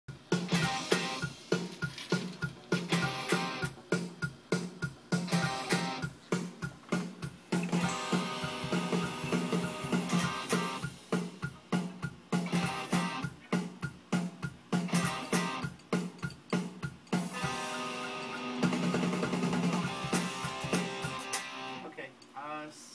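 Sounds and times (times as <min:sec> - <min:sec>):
pop-punk band music: 0:00.1 - 0:21.8.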